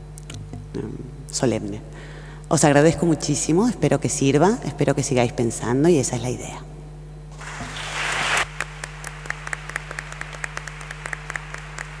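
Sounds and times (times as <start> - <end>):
low electrical hum: 0.0 - 12.0
people clapping: 7.4 - 12.0.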